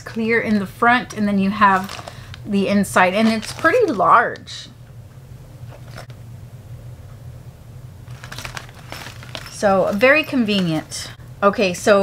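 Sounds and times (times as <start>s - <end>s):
plastic pouch rustling: 0.0s - 4.5s, 8.0s - 11.2s
steady low hum: 0.0s - 12.0s.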